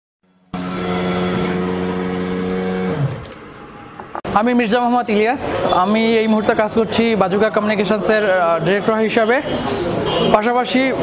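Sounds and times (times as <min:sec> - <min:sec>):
droning tone sliding down: 0:00.3 - 0:04.2.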